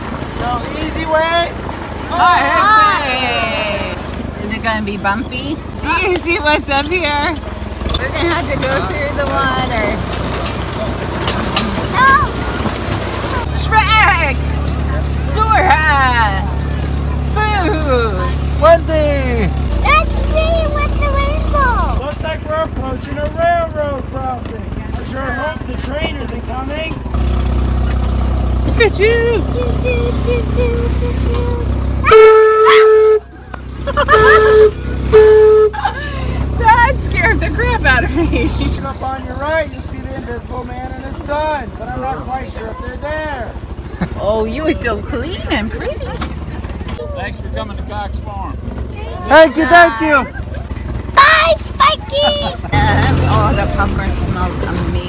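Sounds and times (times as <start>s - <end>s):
tractor engine running: 0.0s - 55.0s
train horn blasts: 32.0s - 33.3s, 34.2s - 35.8s.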